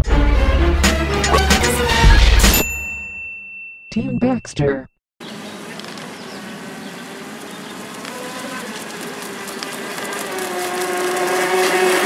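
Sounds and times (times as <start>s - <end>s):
high metallic ding ringing: 2.5s - 4.5s
person speaking: 3.9s - 4.9s.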